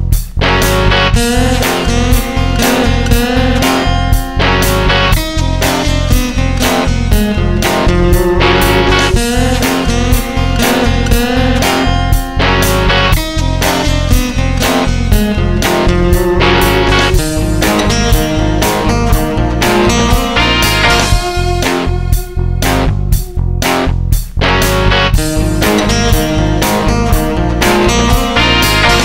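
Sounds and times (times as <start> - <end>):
rock song with electric guitars: 0.0 - 29.0.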